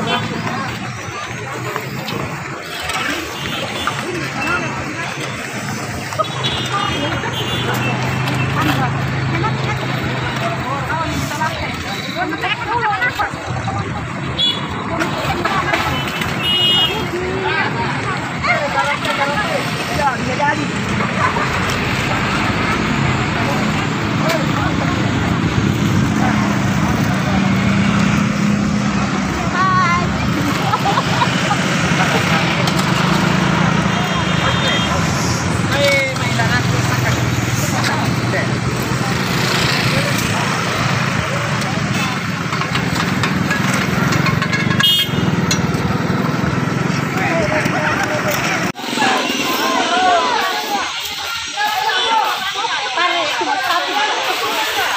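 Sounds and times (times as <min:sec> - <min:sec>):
crowd chatter: 0:00.0 - 0:54.9
vehicle engine humming: 0:00.0 - 0:54.9.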